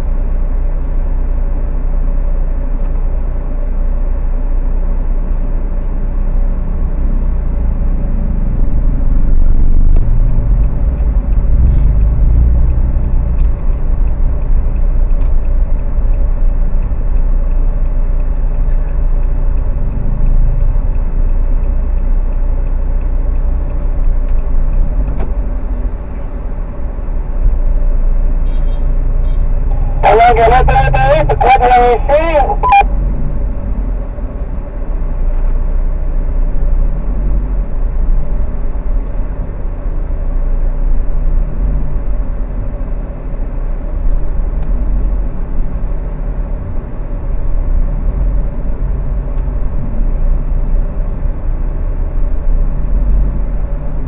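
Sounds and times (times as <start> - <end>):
car engine rumble: 0.0 - 54.0
road noise: 0.0 - 54.0.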